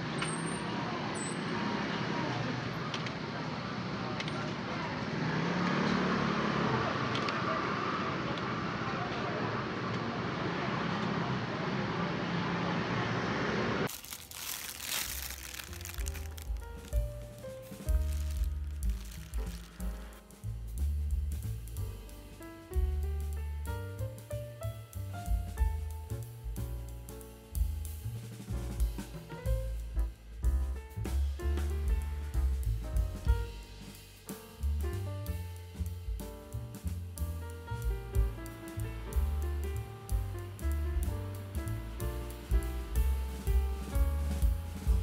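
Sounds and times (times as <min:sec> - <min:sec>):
traffic: 0:00.0 - 0:17.0
background music with drums: 0:16.3 - 0:45.0.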